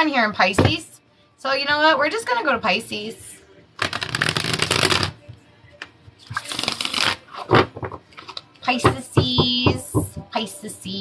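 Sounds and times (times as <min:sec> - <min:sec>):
cards being shuffled: 0:03.8 - 0:05.2, 0:06.3 - 0:08.4.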